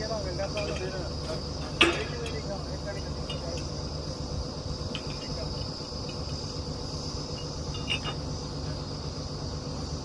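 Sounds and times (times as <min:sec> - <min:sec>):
drilling rig engine droning: 0:00.0 - 0:10.0
high-pitched whine: 0:00.0 - 0:10.0
metallic clinks: 0:07.2 - 0:08.3.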